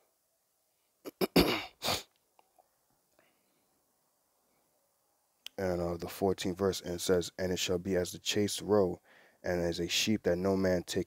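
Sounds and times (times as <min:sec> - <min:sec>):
man sneezing: 0:01.1 - 0:02.1.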